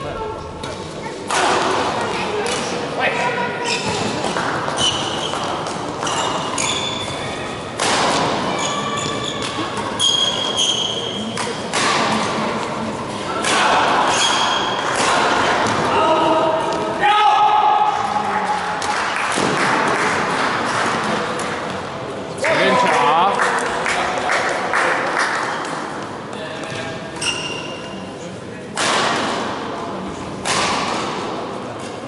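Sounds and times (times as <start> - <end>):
players' voices: 0.0 - 32.0
shoes squeaking on floor: 3.6 - 7.6, 8.5 - 11.3, 14.1 - 14.7, 26.7 - 28.0
racket striking shuttlecock: 7.8 - 8.5.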